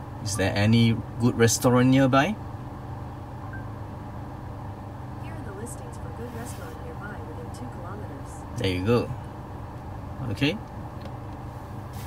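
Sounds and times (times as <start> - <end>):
car interior hum and rumble: 0.0 - 12.0.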